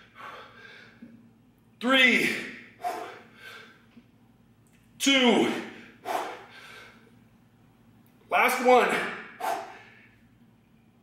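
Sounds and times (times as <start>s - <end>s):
man exhaling forcefully: 2.8s - 3.7s, 6.0s - 7.0s, 9.4s - 10.0s.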